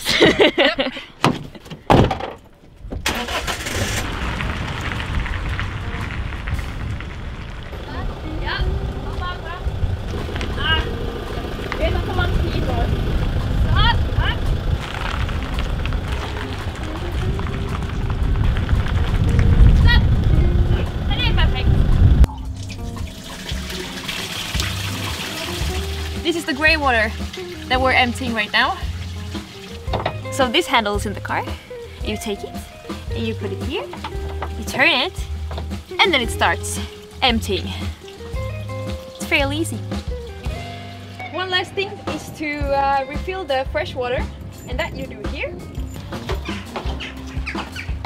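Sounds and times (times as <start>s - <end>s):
camper van engine running: 3.0s - 22.9s
background music: 5.3s - 48.0s.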